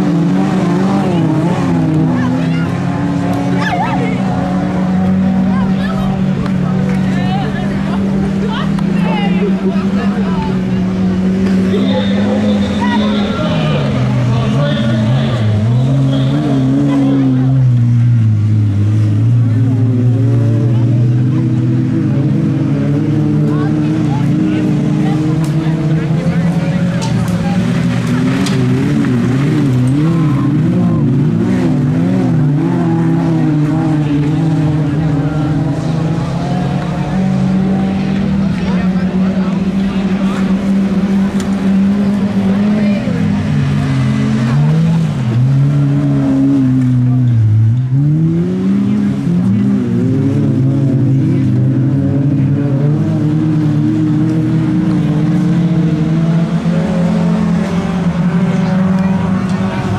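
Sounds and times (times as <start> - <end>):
racing car engines revving: 0.0 - 59.9.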